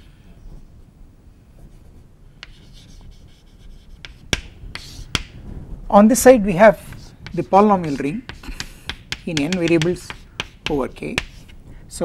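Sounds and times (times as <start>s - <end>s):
chalk scratching on blackboard: 2.4s - 5.4s, 6.6s - 11.6s
chalk tapping on board: 2.4s - 5.4s, 6.8s - 11.6s.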